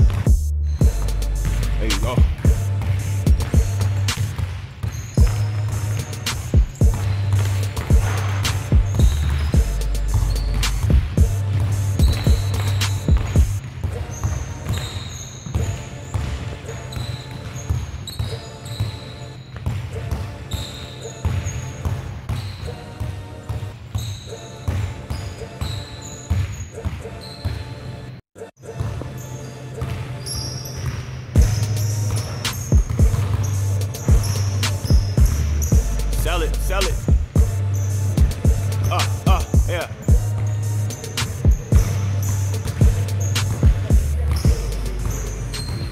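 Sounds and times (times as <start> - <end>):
hip hop music with heavy bass: 0.0 - 4.3, 5.2 - 14.1, 31.4 - 45.9
basketballs bouncing on court: 0.0 - 27.9, 29.8 - 45.9.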